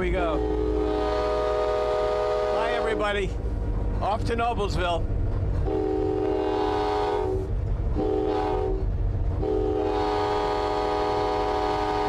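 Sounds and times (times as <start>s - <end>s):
moving train rumble: 0.0s - 12.0s
locomotive air horn blasts: 0.2s - 3.2s, 5.6s - 8.8s, 9.4s - 12.0s.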